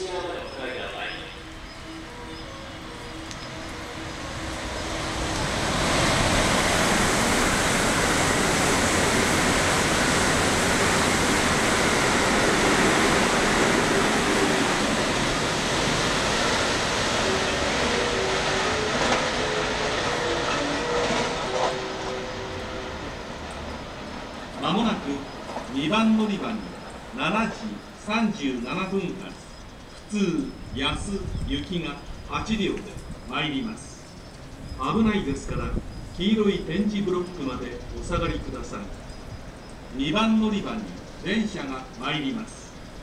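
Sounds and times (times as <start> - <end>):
train passing at speed: 0.0 - 43.0.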